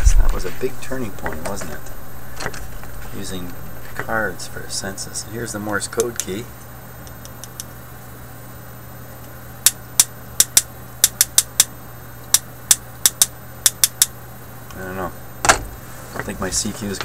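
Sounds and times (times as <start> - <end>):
louder thump: 15.4 - 15.8.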